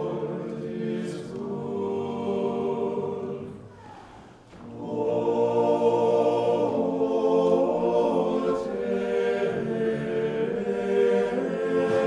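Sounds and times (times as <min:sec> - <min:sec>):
church choir chanting: 0:00.0 - 0:12.0.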